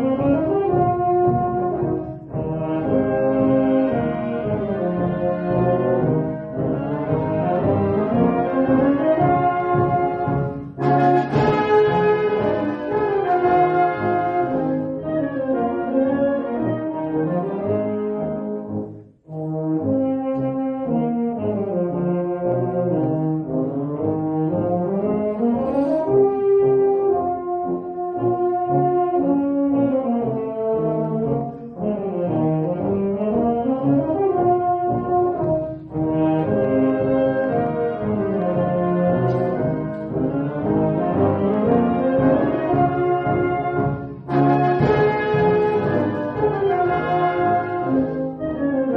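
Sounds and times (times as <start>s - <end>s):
concert band playing brass: 0.0s - 48.9s.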